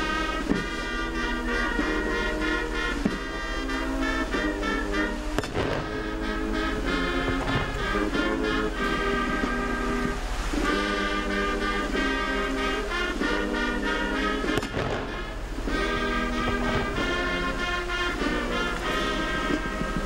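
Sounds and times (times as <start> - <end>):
military brass band playing: 0.0 - 20.0.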